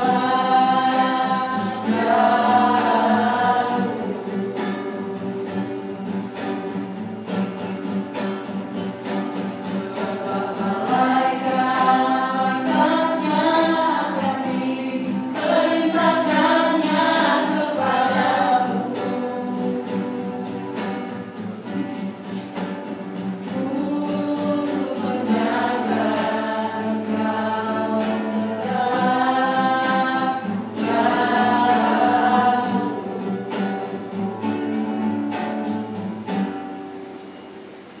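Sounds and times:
group of voices singing: 0.0s - 6.7s, 8.4s - 22.0s, 22.9s - 35.0s
strummed acoustic guitar: 0.0s - 38.0s.

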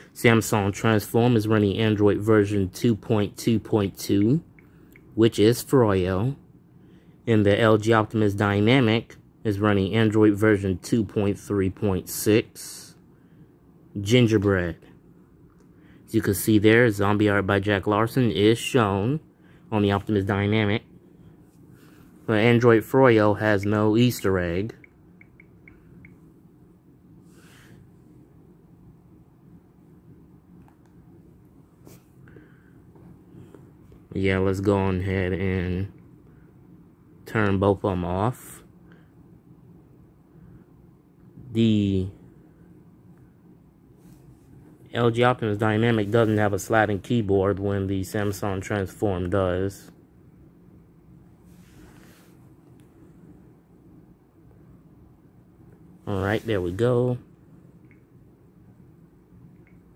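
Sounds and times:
steady low hum: 0.0s - 59.9s
soft hiss: 40.3s - 50.0s, 50.7s - 53.5s, 55.6s - 58.7s.

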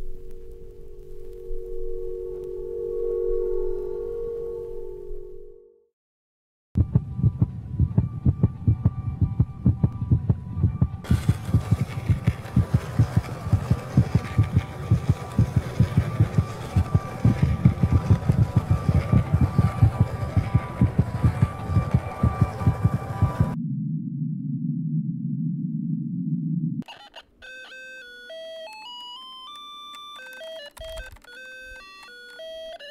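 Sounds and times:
high hum-like tones: 0.0s - 5.8s, 6.8s - 26.8s
low throbbing pulses: 6.8s - 26.8s.

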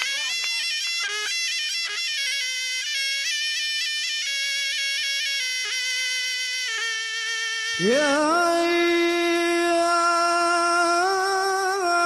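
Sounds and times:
shawm playing a melody: 0.0s - 10.4s.

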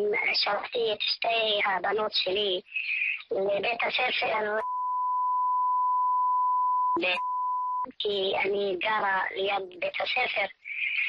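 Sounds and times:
woman speaking: 0.0s - 4.7s, 7.0s - 11.0s
bleep tone: 4.6s - 7.9s.

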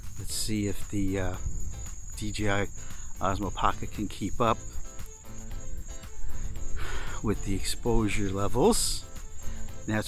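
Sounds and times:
crickets chirring: 0.0s - 10.0s
wind rumbling on microphone: 0.0s - 10.0s.

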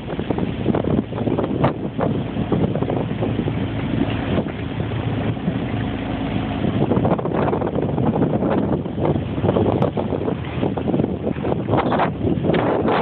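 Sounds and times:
choppy water: 0.0s - 13.0s
small outboard motor running: 0.0s - 13.0s
wind buffeting microphone: 0.0s - 13.0s.

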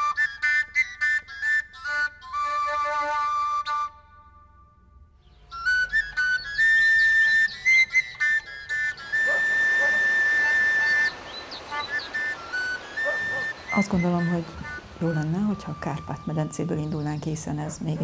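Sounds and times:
flute-like slow melody: 0.0s - 16.8s.

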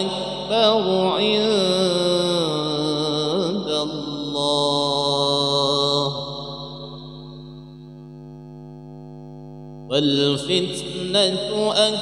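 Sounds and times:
person chanting recitation: 0.0s - 7.5s, 9.9s - 12.0s
faint steady tone: 0.0s - 12.0s.

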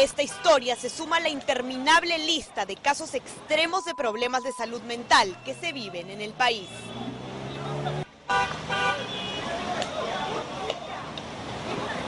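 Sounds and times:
voices: 0.0s - 8.1s
traffic noise: 0.0s - 12.0s.

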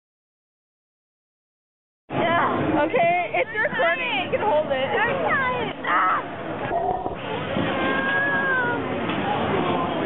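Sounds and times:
babble of a crowd: 2.1s - 10.0s.

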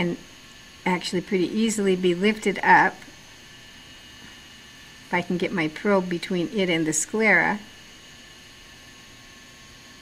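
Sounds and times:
thin electrical hum: 0.0s - 10.0s.

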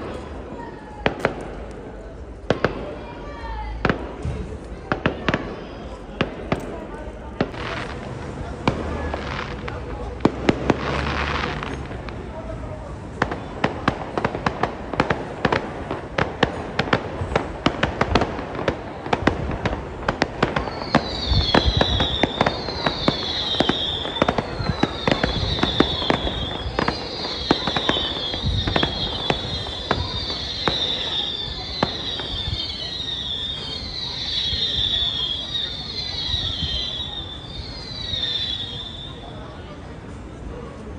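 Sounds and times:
fireworks cracking and banging: 0.0s - 40.9s
high falling firework whistle: 20.5s - 39.5s.

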